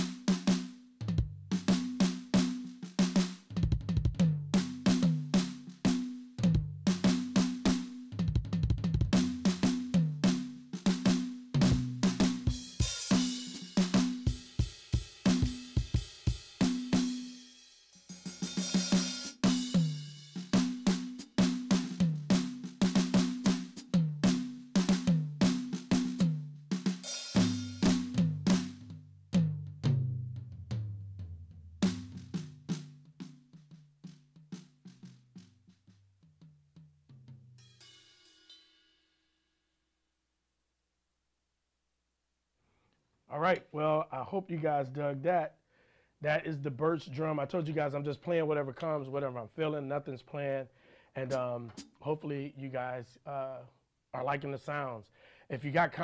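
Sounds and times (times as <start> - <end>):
electronic drum kit groove: 0.0 - 30.8, 51.2 - 52.0.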